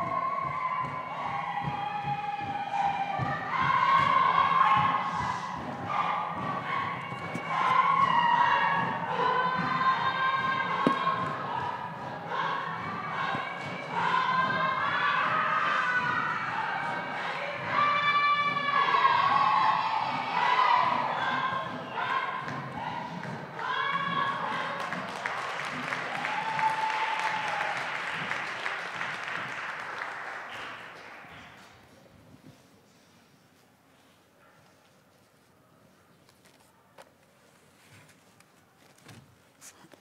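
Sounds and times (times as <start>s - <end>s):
heavy thumps: 0.0s - 17.0s
group singing and chanting: 0.0s - 25.2s.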